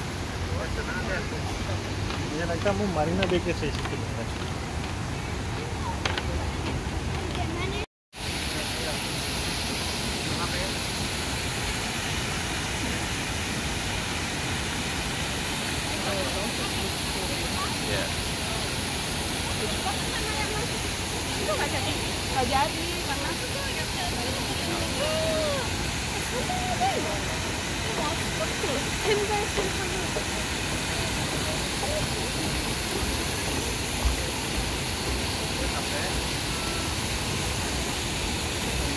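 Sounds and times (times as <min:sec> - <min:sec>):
rushing outdoor noise: 0:00.0 - 0:38.9
faint voices: 0:00.2 - 0:07.9, 0:15.8 - 0:38.9.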